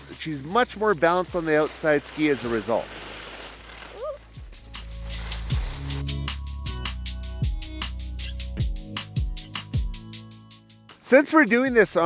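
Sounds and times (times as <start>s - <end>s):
busy music beat: 4.2s - 11.0s.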